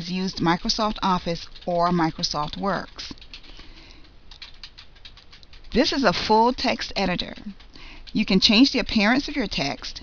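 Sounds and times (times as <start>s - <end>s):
keyboard typing clicks: 0.0s - 10.0s.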